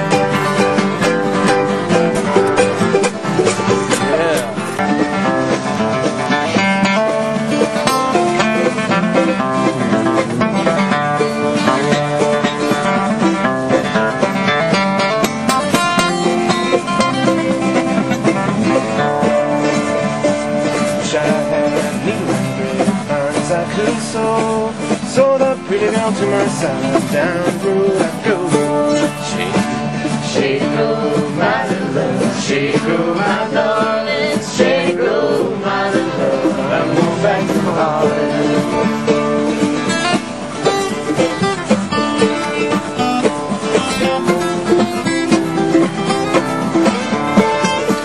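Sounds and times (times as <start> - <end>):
acoustic guitars strumming: 0.0 - 48.0.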